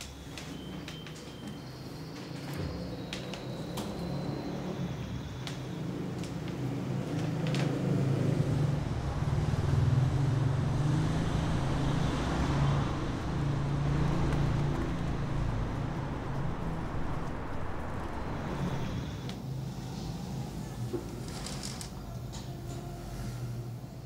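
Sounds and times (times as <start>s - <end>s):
street traffic: 0.0s - 24.0s
vehicle engine running: 6.2s - 19.3s.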